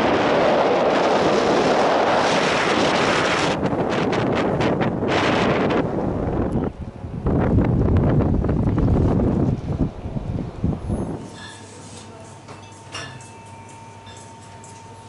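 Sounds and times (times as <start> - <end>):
wind buffeting microphone: 0.0 - 11.3.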